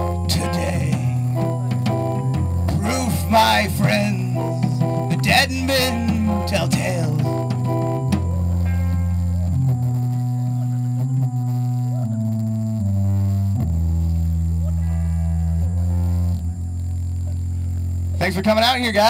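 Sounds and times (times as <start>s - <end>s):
drumming: 0.0s - 8.7s
bass line: 0.0s - 19.0s
electric guitar chords: 0.0s - 19.0s
keyboard chords: 0.0s - 19.0s.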